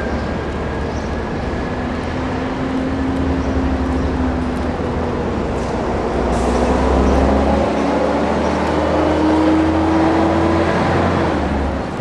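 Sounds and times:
engine running: 0:00.0 - 0:12.0.

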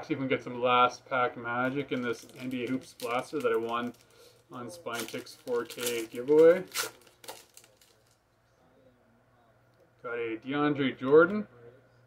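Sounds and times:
wrapper being pulled open: 0:01.6 - 0:08.2.

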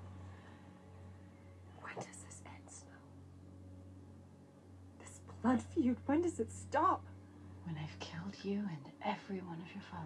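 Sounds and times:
steady low hum: 0:00.0 - 0:10.0
woman whispering: 0:01.7 - 0:03.1.

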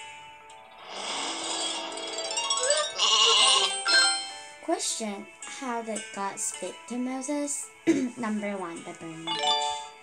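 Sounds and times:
light cartoon music: 0:00.0 - 0:10.0
sheep bleating sound effect: 0:03.0 - 0:04.1.

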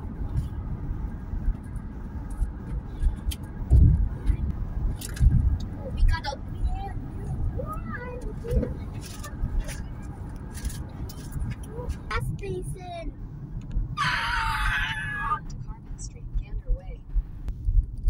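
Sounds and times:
car road noise rumble: 0:00.0 - 0:18.0.

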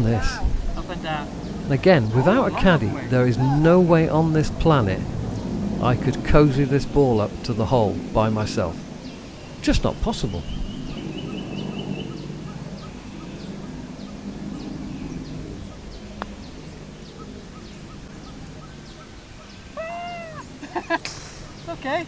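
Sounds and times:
steady low hum: 0:00.0 - 0:22.0
arched bird calls: 0:08.6 - 0:22.0
bird chirps: 0:09.0 - 0:21.9.

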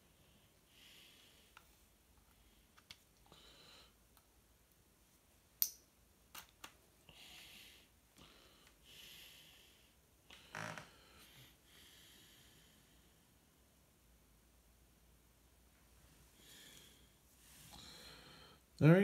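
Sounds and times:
soft breaths: 0:00.0 - 0:04.3, 0:06.9 - 0:13.9, 0:15.7 - 0:18.8.

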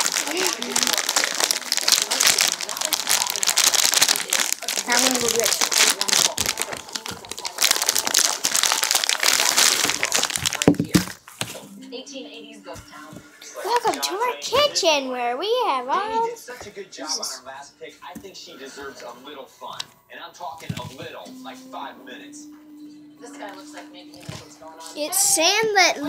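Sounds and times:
plastic bag crinkling: 0:00.0 - 0:11.7.

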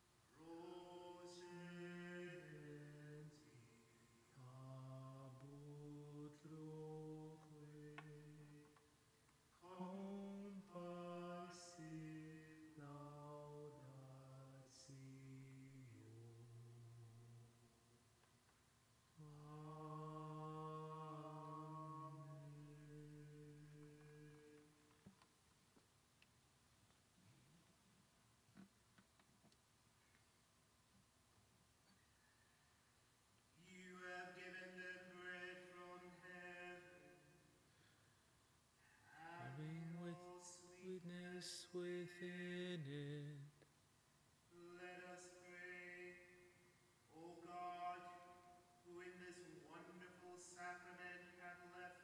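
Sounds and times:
person singing slow chant: 0:00.3 - 0:09.0, 0:09.6 - 0:17.8, 0:19.2 - 0:24.9, 0:33.6 - 0:37.9, 0:38.8 - 0:43.6, 0:44.5 - 0:52.0.

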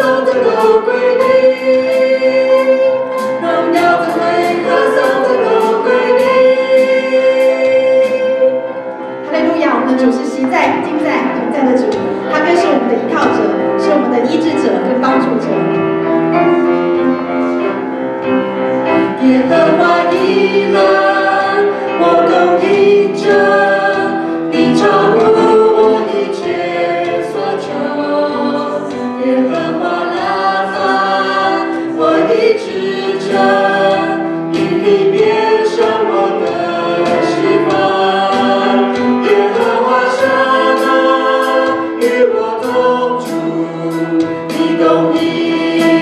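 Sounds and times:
people singing through pa: 0:00.0 - 0:15.2, 0:18.8 - 0:46.0
keyboard accompaniment: 0:00.0 - 0:46.0.

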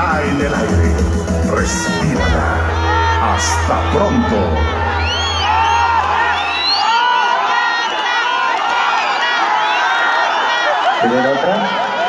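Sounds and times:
live band music over loudspeakers: 0:00.0 - 0:06.0.

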